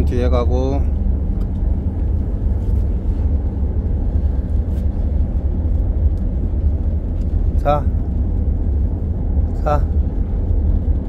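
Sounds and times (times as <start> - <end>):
ship engine rumbling: 0.0 - 11.0.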